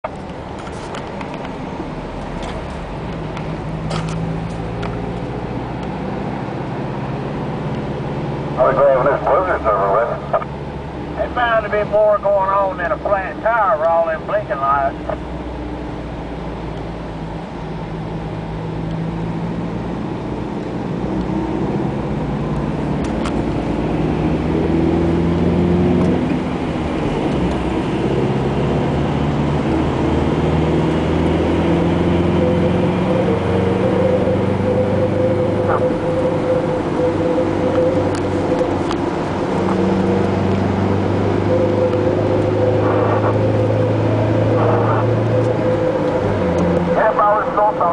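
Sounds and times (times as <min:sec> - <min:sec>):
car engine: 0:00.0 - 0:47.9
road noise inside car: 0:00.0 - 0:47.9.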